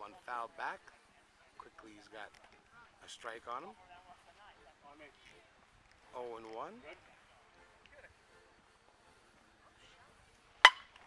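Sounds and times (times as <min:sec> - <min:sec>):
bat hitting softball: 0:10.6 - 0:11.0.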